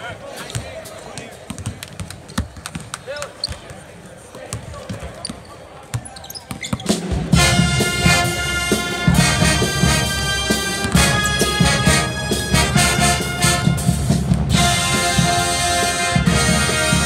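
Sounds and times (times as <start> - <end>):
basketballs bouncing on hardwood: 0.5 - 3.8, 10.8 - 11.1
loud music: 7.3 - 17.0.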